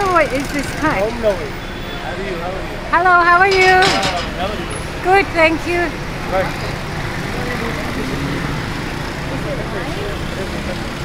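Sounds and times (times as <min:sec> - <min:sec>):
busy street traffic: 0:00.0 - 0:11.0
faint voices chattering: 0:00.0 - 0:11.0.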